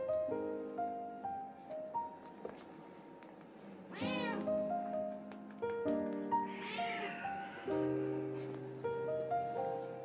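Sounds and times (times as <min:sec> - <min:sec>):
piano music: 0:00.0 - 0:10.0
cat meowing: 0:03.9 - 0:04.6, 0:06.4 - 0:07.8.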